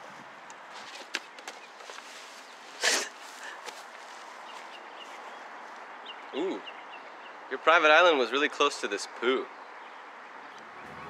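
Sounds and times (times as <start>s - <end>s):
outdoor background hiss: 0.0s - 11.0s
short rustling: 0.7s - 5.3s.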